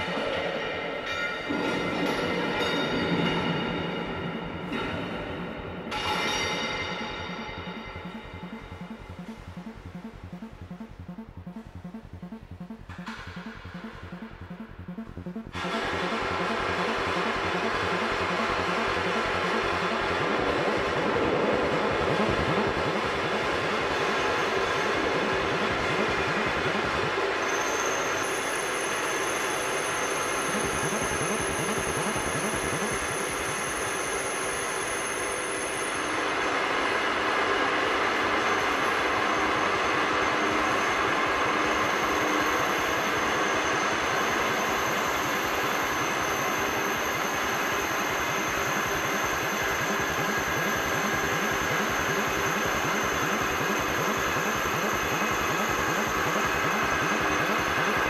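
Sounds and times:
regular low thump: 0:07.0 - 0:15.6.

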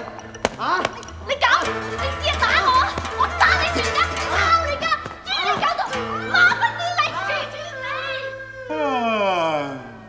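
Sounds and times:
background music with held notes: 0:00.0 - 0:10.0.

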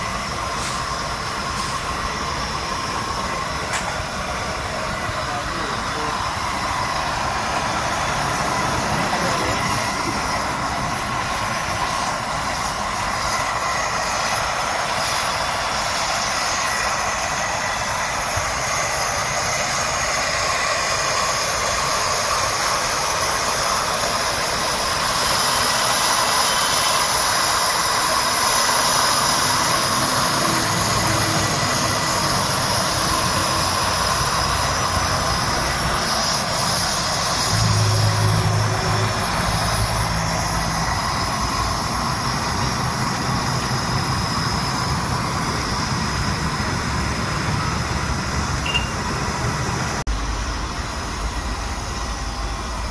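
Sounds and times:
gas burner hissing: 0:00.0 - 0:52.9
low hum: 0:29.4 - 0:52.9.

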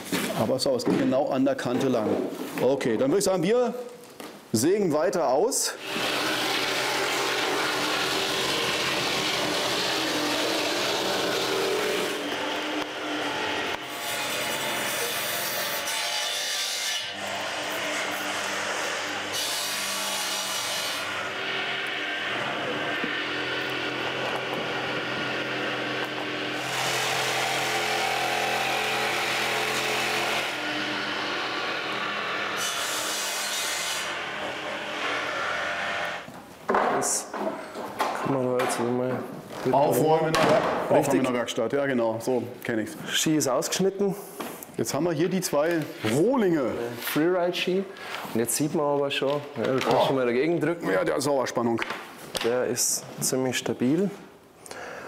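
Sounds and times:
jigsaw cutting: 0:05.8 - 0:15.6, 0:17.1 - 0:33.2.

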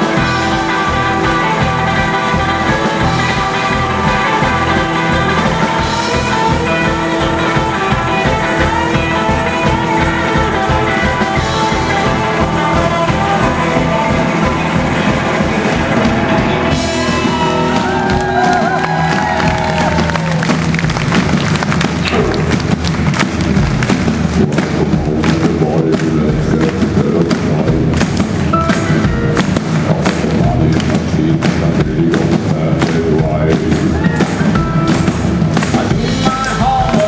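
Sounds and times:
bending electric guitar lines: 0:00.0 - 0:37.0
live rock band playing: 0:00.0 - 0:37.0.

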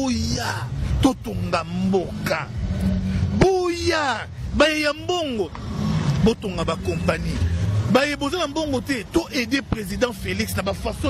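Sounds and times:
background traffic rumble: 0:00.0 - 0:11.0.

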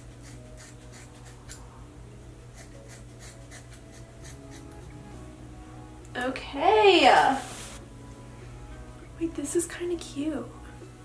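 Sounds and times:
faint background music: 0:00.0 - 0:11.0
scissors snipping hair: 0:00.1 - 0:01.7, 0:02.5 - 0:04.8.

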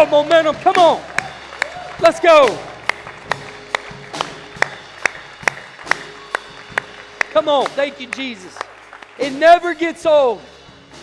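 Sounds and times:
man clapping hands: 0:00.0 - 0:09.4.

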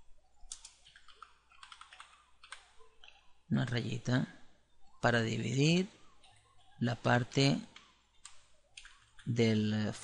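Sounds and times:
computer keyboard keystrokes: 0:00.5 - 0:03.8, 0:07.7 - 0:09.4.

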